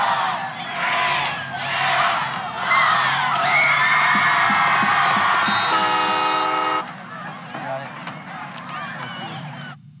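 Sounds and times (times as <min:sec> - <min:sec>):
crowd shouting and cheering: 0:00.0 - 0:09.8.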